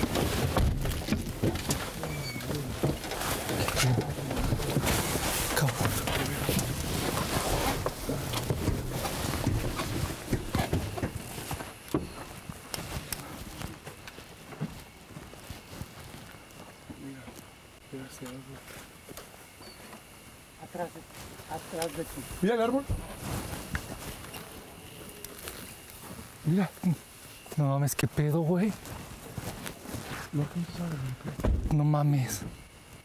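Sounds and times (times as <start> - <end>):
footsteps on ground: 0.0 - 20.2, 21.0 - 31.7
indistinct voices: 1.6 - 7.4.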